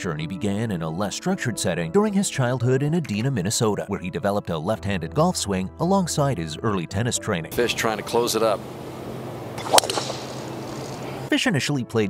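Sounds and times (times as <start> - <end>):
golf club striking ball: 7.6 - 11.3
soft hiss: 7.6 - 11.3.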